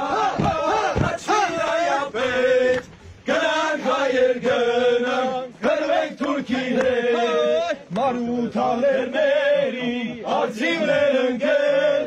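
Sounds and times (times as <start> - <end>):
men singing a chant: 0.0 - 12.0.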